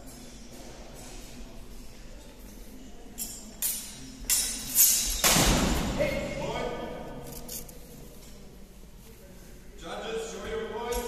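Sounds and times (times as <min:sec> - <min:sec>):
steel swords clashing: 0:03.2 - 0:05.5.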